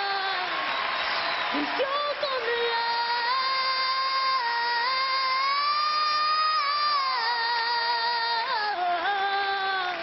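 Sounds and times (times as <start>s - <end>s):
girl singing a long high note: 1.7s - 10.0s.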